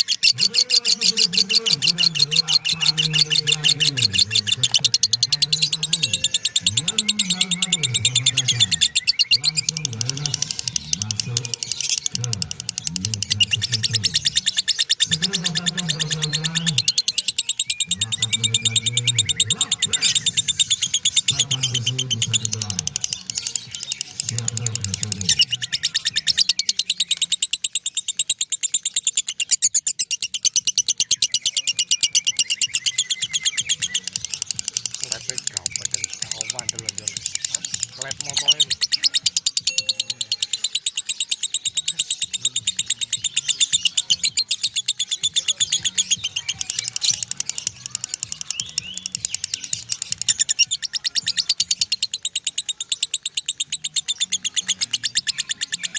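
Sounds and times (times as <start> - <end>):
lovebird rapid high chattering: 0.0 - 55.9.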